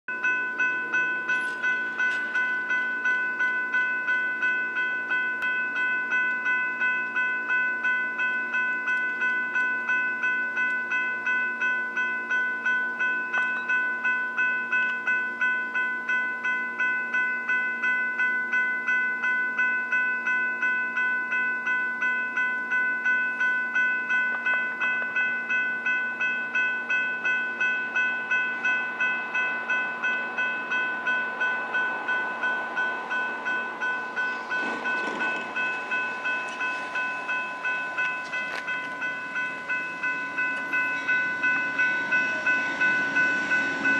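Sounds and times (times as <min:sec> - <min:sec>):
train rushing: 0:00.1 - 0:05.2, 0:24.0 - 0:43.9
railroad crossing bell ringing: 0:00.1 - 0:43.9.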